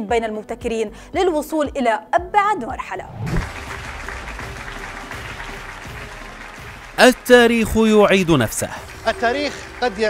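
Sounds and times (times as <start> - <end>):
background music: 0.0 - 10.0
audience applauding: 3.3 - 10.0.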